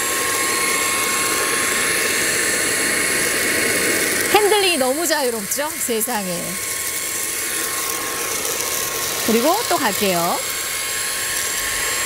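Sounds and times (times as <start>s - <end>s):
stick vacuum whining: 0.0s - 12.0s.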